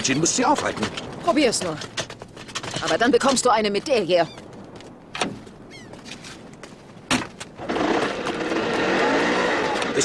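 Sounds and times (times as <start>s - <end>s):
truck engine revving hard: 7.6s - 10.0s.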